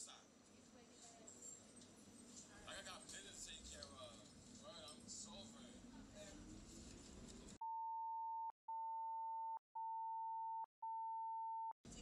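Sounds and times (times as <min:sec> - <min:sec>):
high censor beeps: 0:09.8 - 0:11.8.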